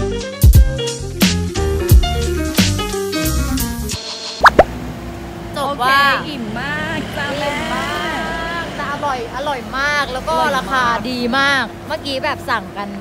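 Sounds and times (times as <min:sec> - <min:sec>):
rising plop sound effects: 0:04.4 - 0:04.7
upbeat background music: 0:04.4 - 0:04.7
street traffic hum: 0:04.6 - 0:13.0.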